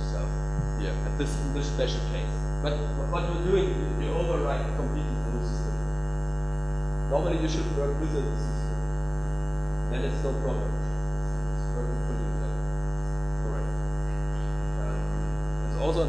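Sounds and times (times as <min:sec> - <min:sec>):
indistinct speech: 0:00.0 - 0:05.7, 0:07.1 - 0:08.5, 0:09.9 - 0:10.8, 0:11.6 - 0:12.6, 0:13.4 - 0:16.0
electrical mains hum: 0:00.0 - 0:16.0.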